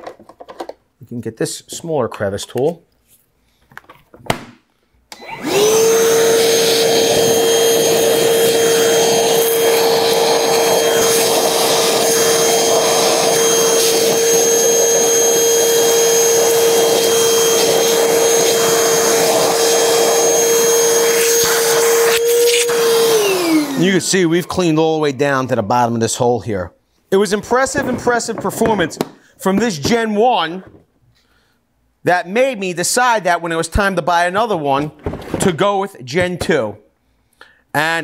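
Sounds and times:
vacuum motor whine: 5.2s - 24.0s
vacuum sucking debris: 5.4s - 23.9s.

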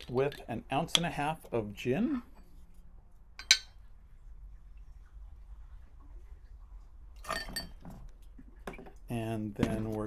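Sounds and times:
glass bottle clinking on jigger: 7.2s - 7.8s.

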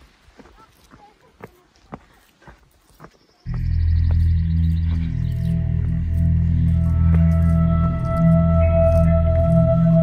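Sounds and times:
footsteps on rocky trail: 0.0s - 10.0s
music with sustained low tones: 3.5s - 10.0s.

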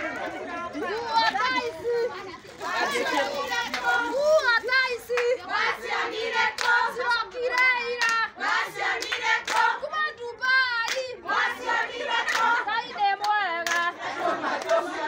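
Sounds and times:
women singing and calling out: 0.0s - 15.0s
rhythmic handclaps: 2.8s - 15.0s.

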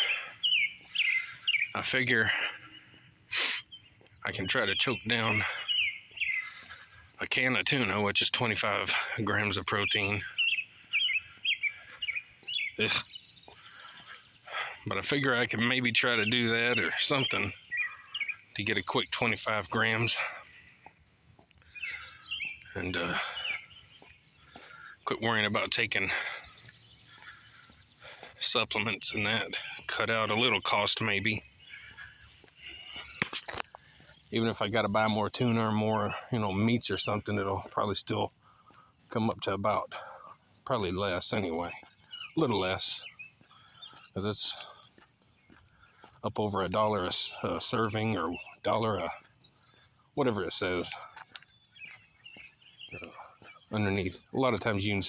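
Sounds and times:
birds chirping: 0.0s - 55.0s.

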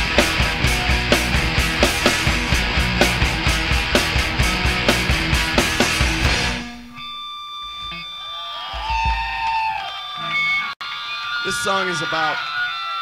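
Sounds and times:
punk rock band playing: 0.0s - 7.2s
high-pitched amplifier tones: 0.0s - 13.0s.

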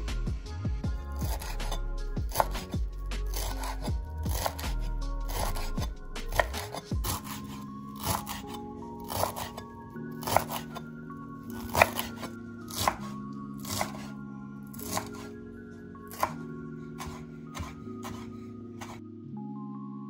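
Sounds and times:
background music: 0.0s - 20.0s
knife chopping on wooden board: 1.1s - 10.8s, 11.5s - 14.1s, 14.7s - 15.3s, 16.1s - 16.4s, 17.0s - 19.0s.

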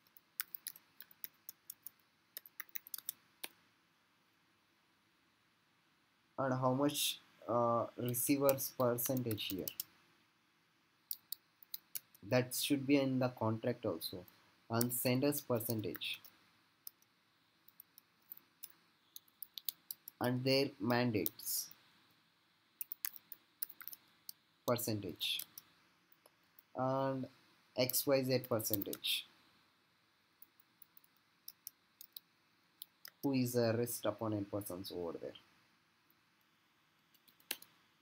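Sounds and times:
computer keyboard typing: 0.0s - 3.2s, 8.0s - 9.9s, 11.1s - 12.2s, 17.7s - 20.2s, 22.8s - 24.0s, 28.4s - 29.0s, 37.2s - 37.7s.

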